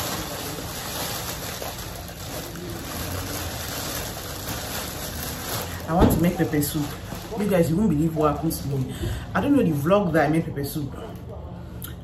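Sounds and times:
plastic bag crinkling: 0:00.0 - 0:09.9.

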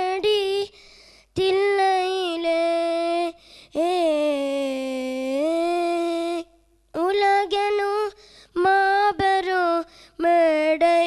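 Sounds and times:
boy singing into a microphone: 0:00.0 - 0:11.0.

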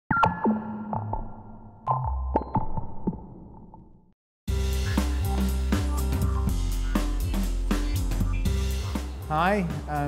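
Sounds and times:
synthesized music jingle: 0:04.5 - 0:09.0.

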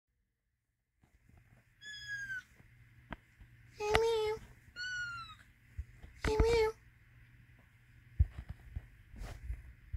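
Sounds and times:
kitten meowing: 0:01.8 - 0:02.5, 0:04.8 - 0:05.4.

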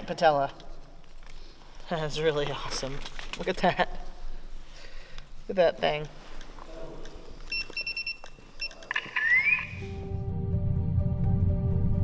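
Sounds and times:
short electronic beeps: 0:07.5 - 0:10.0.

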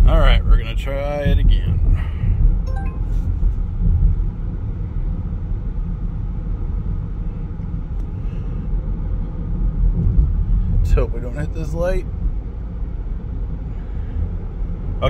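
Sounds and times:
road and engine rumble in car: 0:00.0 - 0:15.0.

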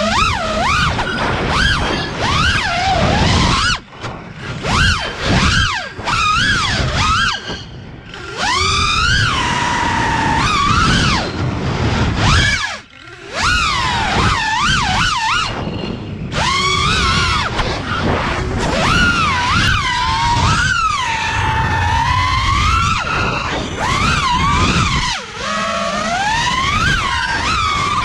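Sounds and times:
quadcopter motors whining: 0:00.0 - 0:28.0.

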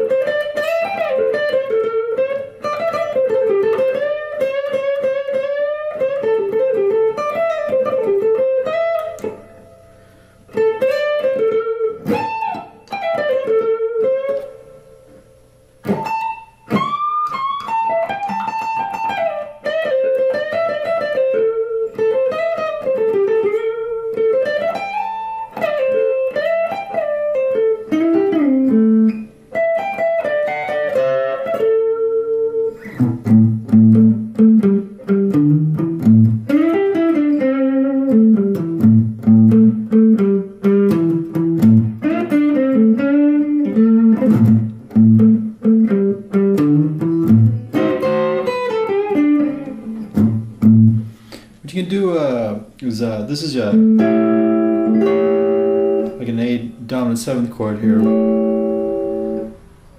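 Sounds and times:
electric guitar blues lead: 0:00.0 - 0:59.9.

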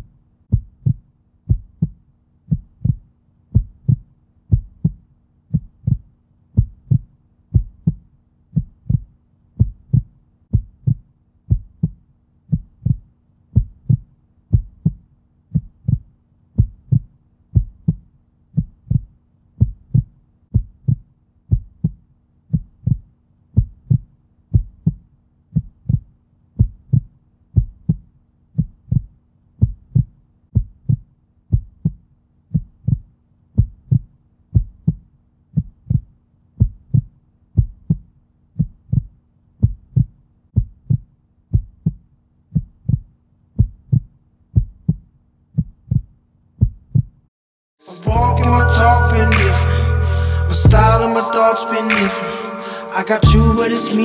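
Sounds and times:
low thumping heartbeat pulse: 0:00.0 - 0:47.2, 0:50.6 - 0:51.1
faint low drone: 0:47.9 - 0:54.0.

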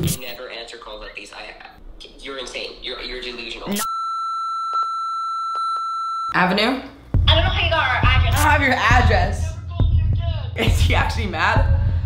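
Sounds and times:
censor bleep tone: 0:03.8 - 0:06.4.

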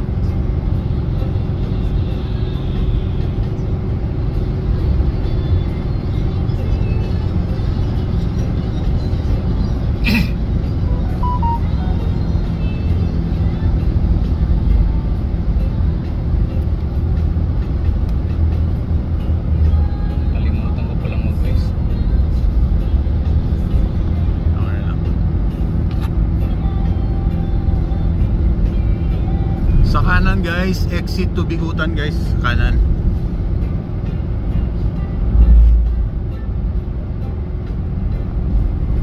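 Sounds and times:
car engine and tyre rumble: 0:00.0 - 0:39.0
music: 0:00.0 - 0:39.0.

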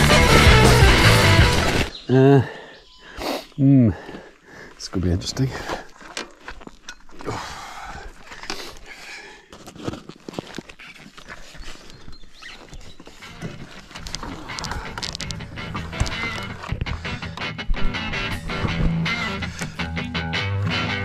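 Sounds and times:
music: 0:00.0 - 0:01.9, 0:14.7 - 0:21.0
bags rustling: 0:09.5 - 0:17.1.

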